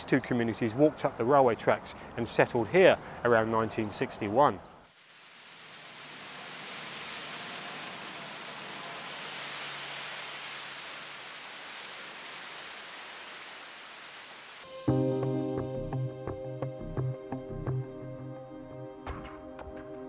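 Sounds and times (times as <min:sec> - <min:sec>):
water rushing from passing boat: 0:04.9 - 0:14.7
music: 0:14.6 - 0:20.0.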